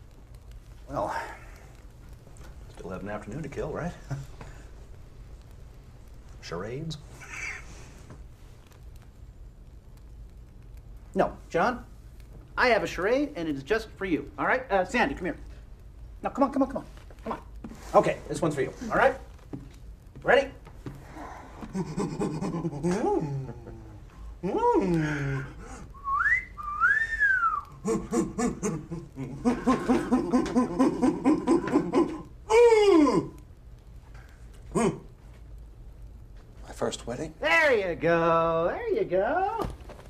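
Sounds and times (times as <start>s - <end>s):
person humming: 21.6s - 26.3s
person whooping: 21.7s - 33.4s, 34.7s - 35.1s
whistle gliding up and down: 26.0s - 27.7s.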